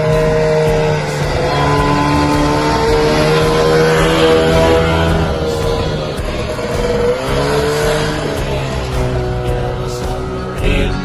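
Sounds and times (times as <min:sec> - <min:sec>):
two-stroke car engine driving: 0:00.0 - 0:11.0.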